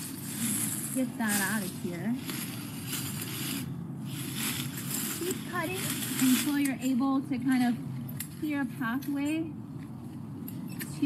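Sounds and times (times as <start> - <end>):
rustling of shrub branches: 0.0 - 11.0.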